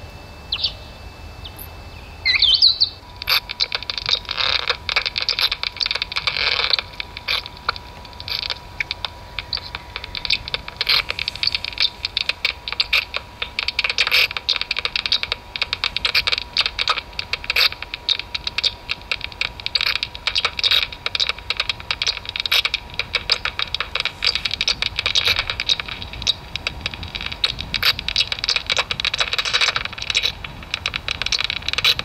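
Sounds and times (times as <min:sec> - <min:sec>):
bat echolocation clicks: 0:02.3 - 0:32.0.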